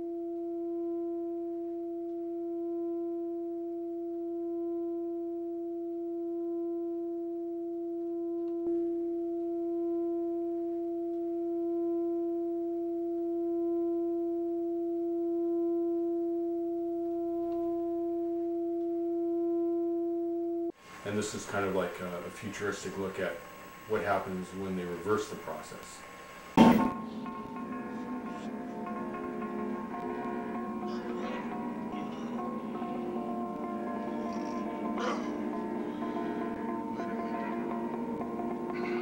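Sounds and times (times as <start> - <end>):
electronic drone tone: 0.0 - 20.8, 26.6 - 39.0.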